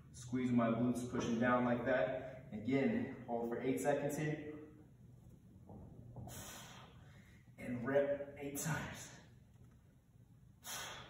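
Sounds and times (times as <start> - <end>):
hissing breath out: 6.2 - 7.1, 10.6 - 11.0
man breathing: 6.2 - 7.6, 10.5 - 11.0.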